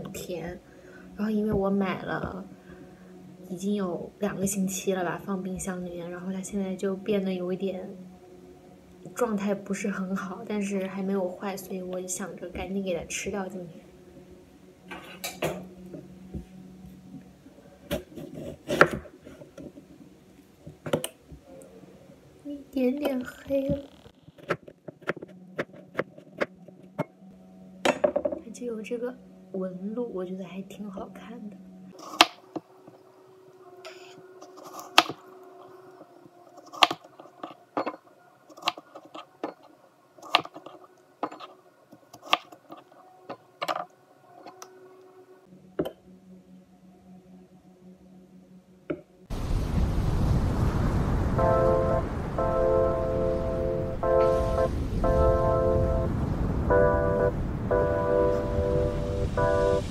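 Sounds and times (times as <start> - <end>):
knife cutting fruit: 36.6 - 37.1.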